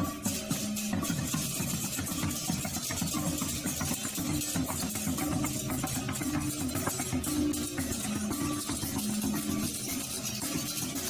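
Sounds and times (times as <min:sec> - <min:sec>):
gamelan percussion: 0:00.0 - 0:11.0.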